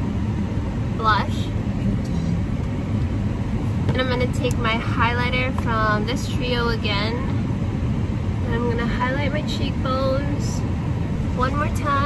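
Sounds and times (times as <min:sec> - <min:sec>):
vehicle engines idling: 0:00.0 - 0:12.0.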